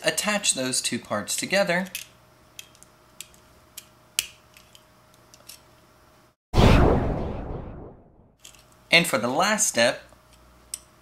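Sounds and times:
rushing transition sound effect: 6.6s - 8.3s.

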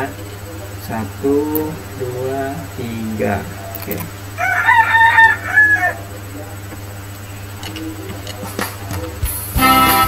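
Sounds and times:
rooster crowing: 4.3s - 6.2s.

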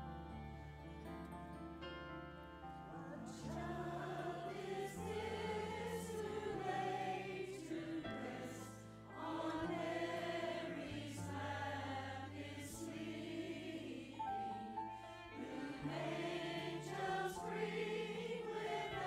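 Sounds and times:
mixed choir singing: 3.0s - 19.0s.

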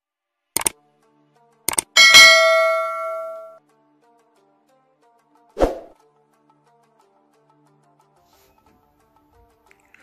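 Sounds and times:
double mouse click: 0.6s - 0.8s, 1.7s - 1.9s
bright bell ding: 2.0s - 3.6s.

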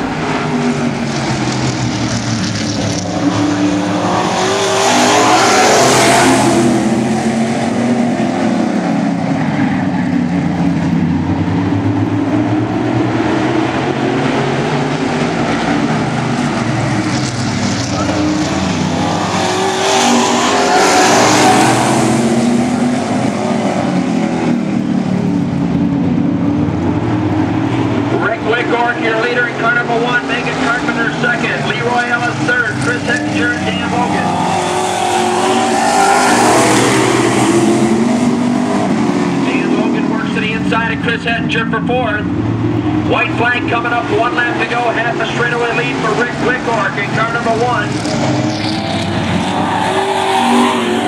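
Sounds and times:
stock car engines racing: 0.0s - 51.0s.

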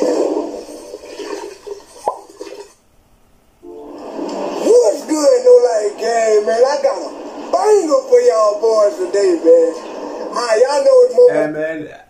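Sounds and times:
toilet flushing: 0.0s - 2.8s.

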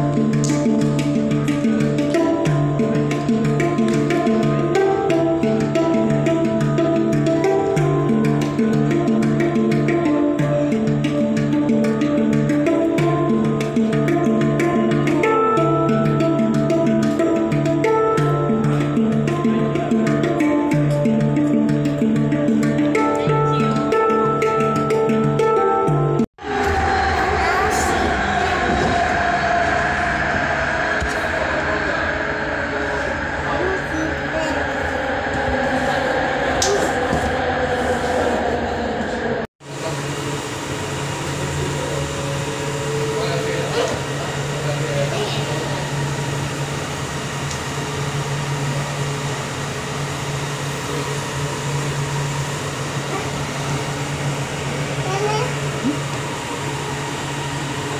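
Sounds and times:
train motor whine: 26.4s - 57.9s
train wheels rumbling on rails: 26.4s - 57.9s.

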